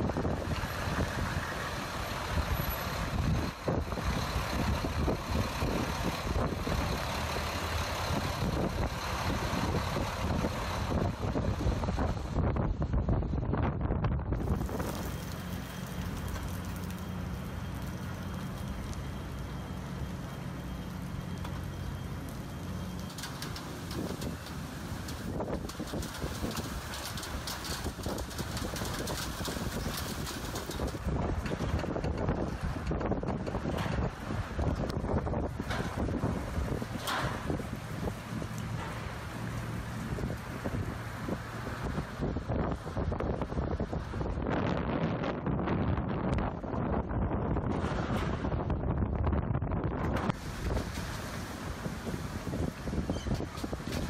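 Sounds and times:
storm wind buffeting microphone: 0.0 - 17.0, 23.0 - 54.0.

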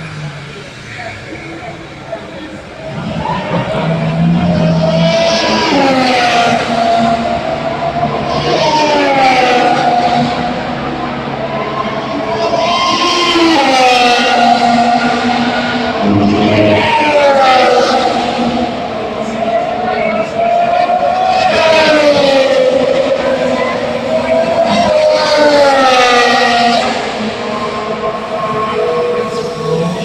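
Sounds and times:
racing cars passing by: 0.0 - 30.0.

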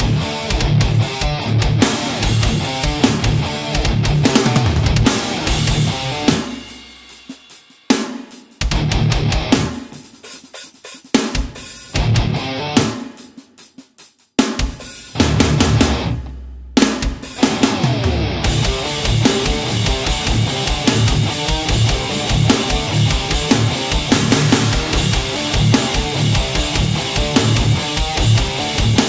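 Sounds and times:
distorted electric guitar riffing: 0.0 - 6.7, 8.6 - 9.8, 11.9 - 13.0, 15.1 - 16.3, 17.3 - 29.0.

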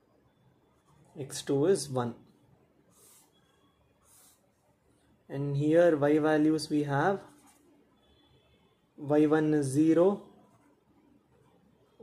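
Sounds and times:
person speaking: 1.1 - 2.2, 5.3 - 7.5
pen scratching on paper: 2.9 - 4.6.

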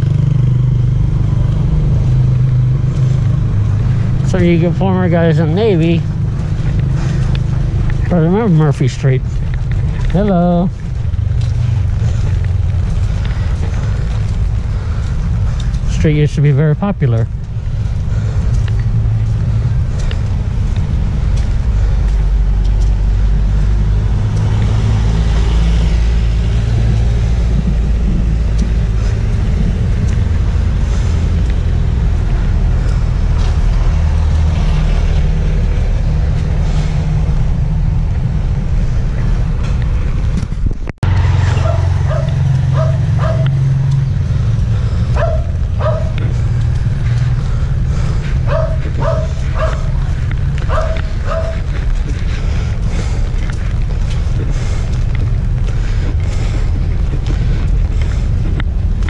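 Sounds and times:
street low rumble: 0.0 - 59.0
dog barking: 41.6 - 43.6, 45.2 - 46.2, 48.5 - 50.0, 50.7 - 51.7.

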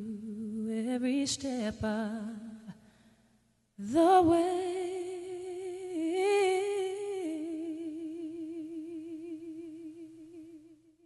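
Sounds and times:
woman singing unaccompanied: 0.0 - 2.7, 3.8 - 11.0.

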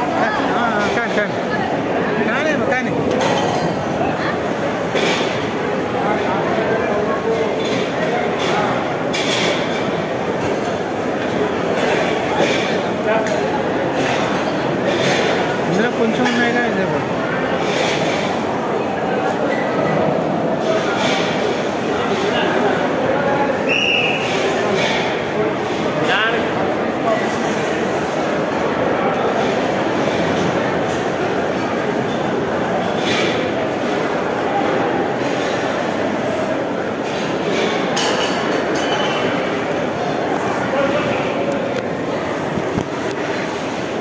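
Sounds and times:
dining hall din: 0.0 - 44.0.

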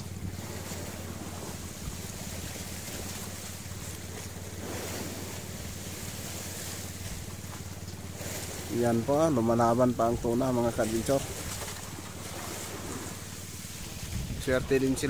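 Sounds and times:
boat engine droning: 0.0 - 15.0
sea wash: 0.0 - 15.0
wind: 0.0 - 15.0.

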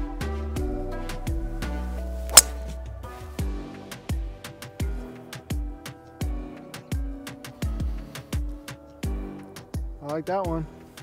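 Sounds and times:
background music with beat: 0.0 - 10.0
golf club hitting ball: 2.3 - 2.7.

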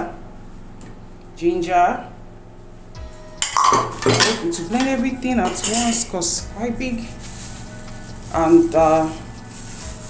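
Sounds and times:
glass bowl clattering against metal: 3.4 - 4.4, 5.4 - 6.0.

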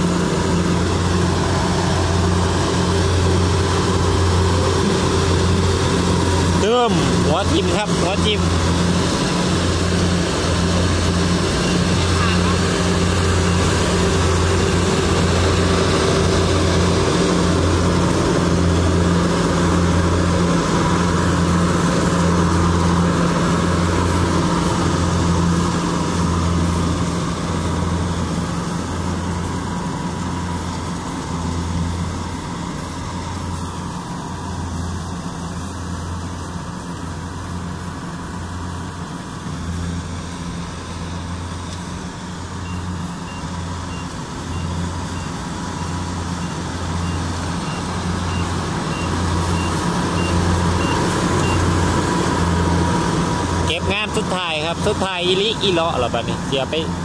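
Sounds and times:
combine harvester diesel drone: 0.0 - 57.0.

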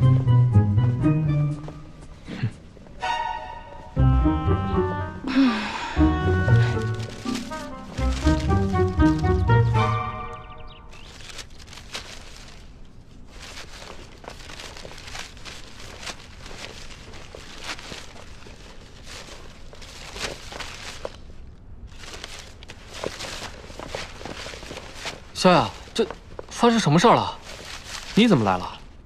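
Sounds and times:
paper sheets shuffling on stone: 6.2 - 10.0, 10.9 - 28.9.

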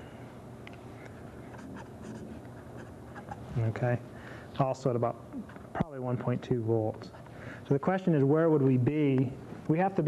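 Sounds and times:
marker pen scratching on paper: 1.5 - 3.6.

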